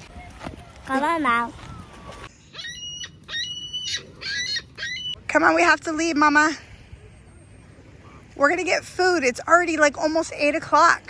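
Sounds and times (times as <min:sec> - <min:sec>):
gulls calling: 0:00.2 - 0:05.7.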